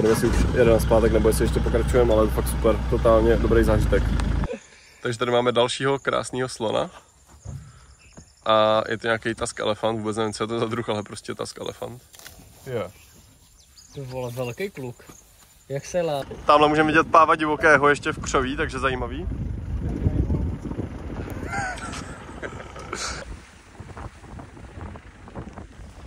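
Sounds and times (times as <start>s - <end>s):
engine and road rumble: 0.0s - 4.6s, 10.6s - 26.0s
wind buffeting microphone: 16.1s - 26.0s.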